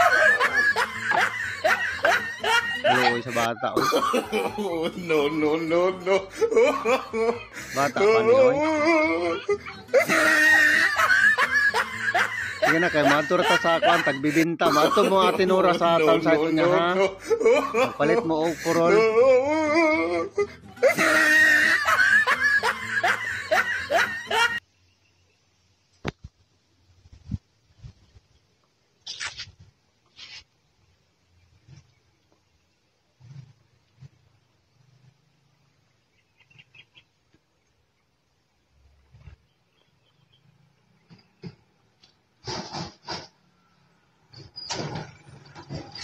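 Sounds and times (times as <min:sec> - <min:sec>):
person laughing: 0:00.0 - 0:24.6.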